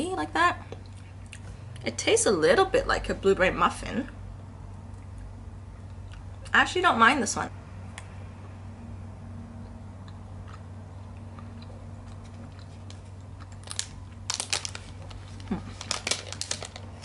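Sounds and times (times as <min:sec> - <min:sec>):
steady low hum: 0:00.0 - 0:17.0
foil wrapper crinkling: 0:12.7 - 0:17.0.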